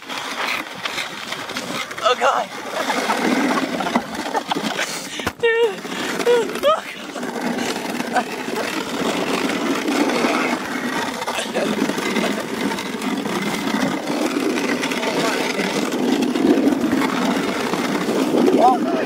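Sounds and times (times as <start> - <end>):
sled scraping over ice: 0.0 - 19.0.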